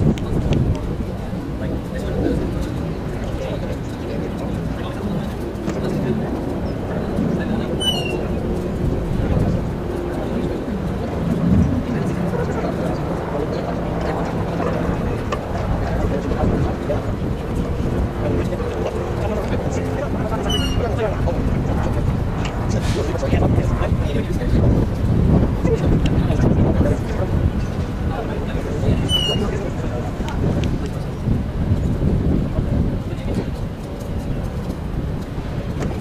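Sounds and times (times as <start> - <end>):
indistinct voices: 0.0 - 36.0
steady outdoor noise: 0.0 - 36.0.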